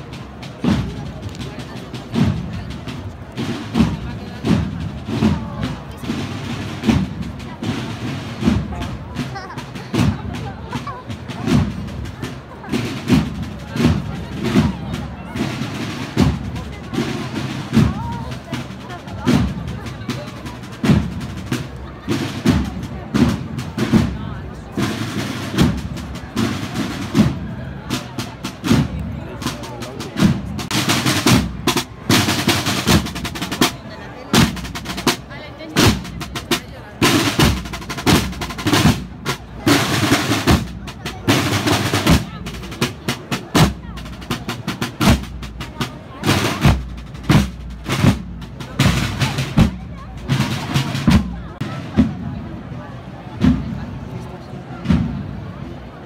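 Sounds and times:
snare drums marching rhythm: 0.0 - 52.3, 53.4 - 53.8, 54.8 - 55.3.

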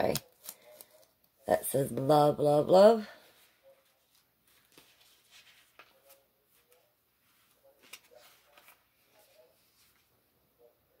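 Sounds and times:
paper rustling and clicks: 7.5 - 10.1.

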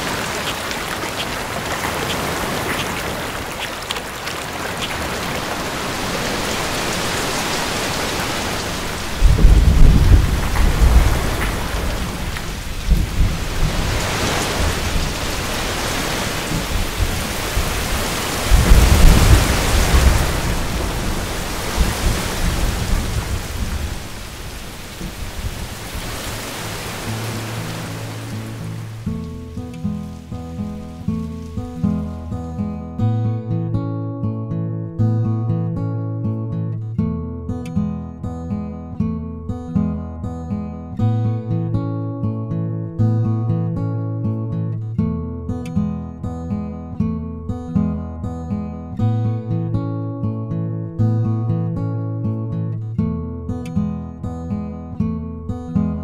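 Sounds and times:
heavy rain: 0.0 - 32.4
thunder rolling: 8.4 - 15.2, 16.5 - 26.3
plucked acoustic guitar music: 8.8 - 14.0, 27.0 - 56.0.

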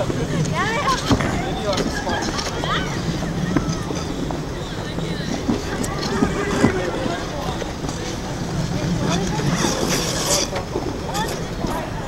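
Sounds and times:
distant voices chattering: 0.0 - 12.0
skate blades scraping on ice: 0.0 - 12.0.

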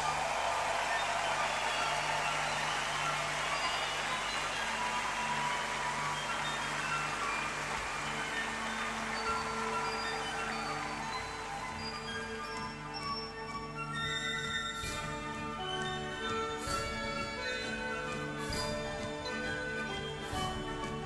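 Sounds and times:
crowd cheering and applause: 0.0 - 14.0
flute phrases: 0.0 - 16.1
orchestra music: 0.0 - 21.0.

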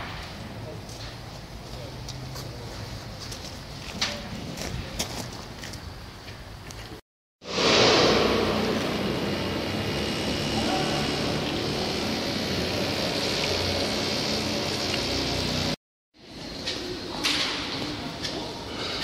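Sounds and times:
loud rushing machinery: 7.4 - 15.8.

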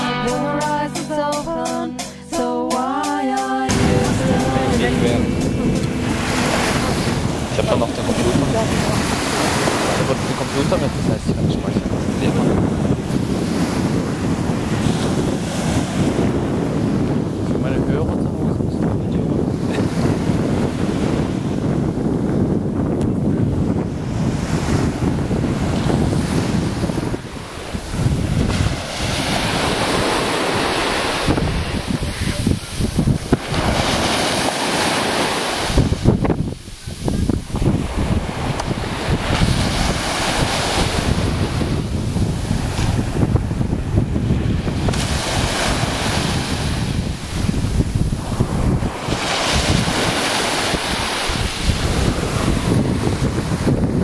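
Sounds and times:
small waves breaking on beach: 3.7 - 17.6, 23.6 - 54.0
wind buffeting microphone: 3.7 - 54.0.

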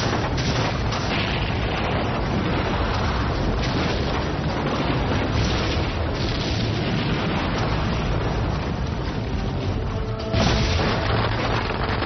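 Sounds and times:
building collapsing rumble: 0.0 - 12.0
dramatic background music: 0.0 - 12.0.

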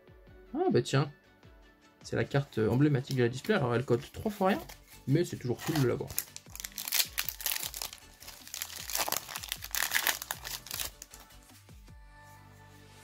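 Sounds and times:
foil wrapper crinkling: 4.0 - 11.4
foil pack tearing open: 5.6 - 11.2.

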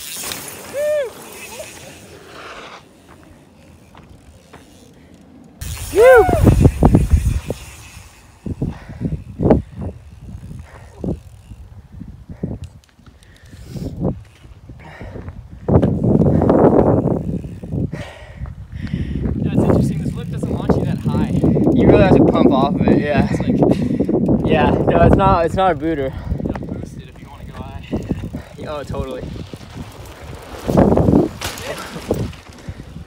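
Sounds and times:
bike clicks and knocks: 3.0 - 5.9, 29.5 - 32.8
tyres rushing on dirt: 24.2 - 33.0.

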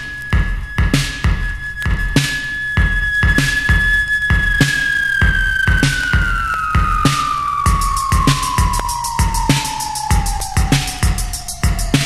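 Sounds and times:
steady drum beat: 0.0 - 12.0.

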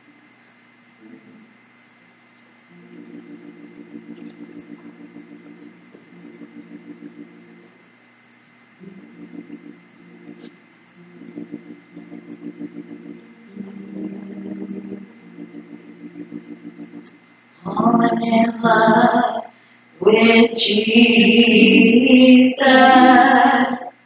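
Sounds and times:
electric keyboard tremolo chords: 2.7 - 7.8, 8.8 - 17.1
woman singing: 17.6 - 24.0.

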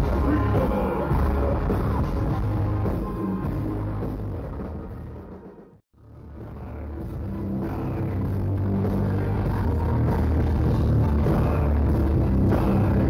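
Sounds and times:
heavy low bass notes: 0.0 - 5.3, 6.0 - 13.0
metal band playing live: 0.0 - 5.5, 6.1 - 13.0.

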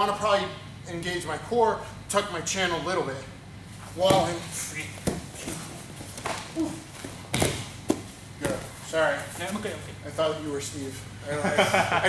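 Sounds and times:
bodies thudding on gym mats: 4.0 - 8.8.

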